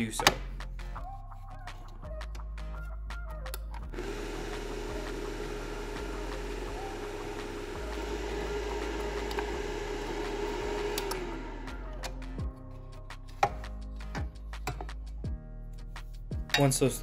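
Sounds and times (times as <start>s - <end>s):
cooling fan whirring hum: 4.0s - 12.0s.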